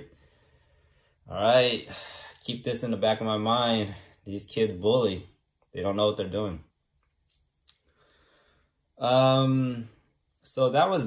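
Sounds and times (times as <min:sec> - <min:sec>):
faint breath: 0:00.1 - 0:01.3, 0:07.8 - 0:08.9.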